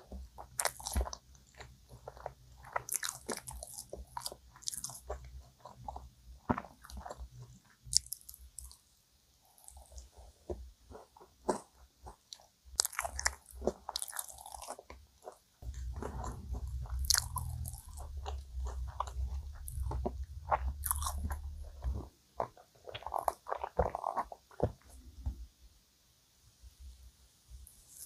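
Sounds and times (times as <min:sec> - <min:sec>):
mouth chewing sounds: 0:00.0 - 0:08.8, 0:09.4 - 0:25.1
low rumble: 0:15.6 - 0:22.1.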